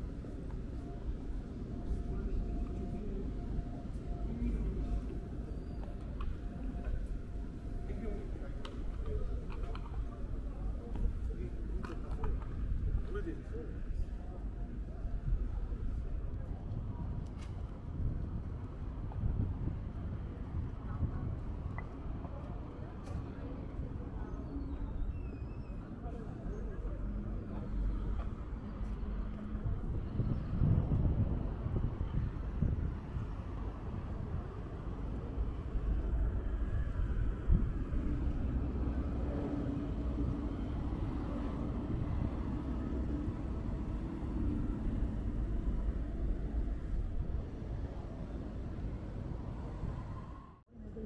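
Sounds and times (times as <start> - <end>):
vehicle engines rumbling: 0.0 - 51.0.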